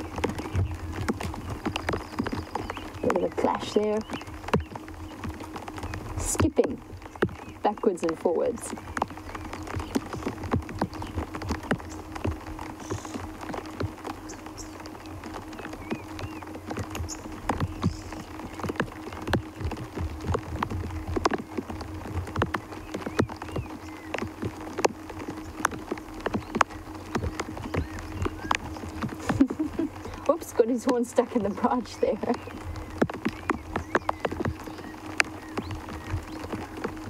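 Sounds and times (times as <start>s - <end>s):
raindrops tapping on hard surface: 0.0s - 37.0s
steady low hum: 0.0s - 37.0s.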